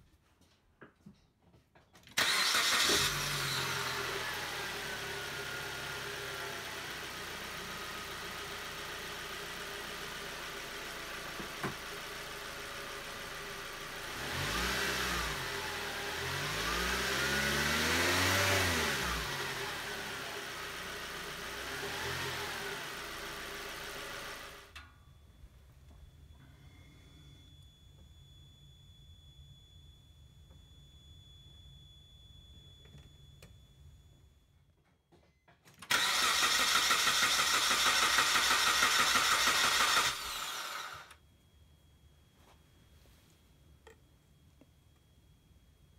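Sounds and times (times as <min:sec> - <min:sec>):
car engine cranking: 0:02.2 - 0:04.8, 0:35.8 - 0:41.2
car engine idling and revving: 0:02.2 - 0:24.8, 0:35.9 - 0:41.2.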